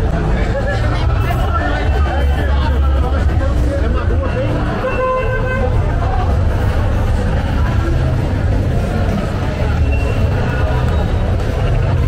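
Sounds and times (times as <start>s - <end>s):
street crowd chatter: 0.0s - 12.0s.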